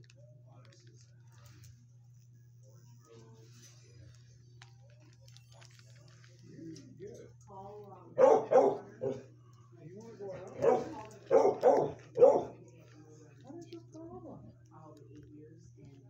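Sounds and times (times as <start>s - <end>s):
dog yipping: 8.2s - 9.2s, 10.6s - 12.5s
dog barking: 8.2s - 9.3s, 10.4s - 12.6s.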